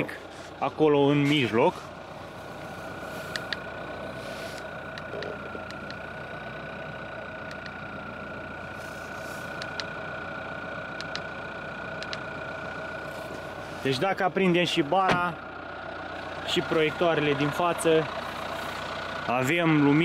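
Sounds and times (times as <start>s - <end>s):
car engine idling with whine: 0.0s - 20.0s
light clicks: 3.3s - 3.6s, 7.4s - 7.8s, 9.5s - 9.9s, 11.0s - 11.3s, 12.0s - 12.2s.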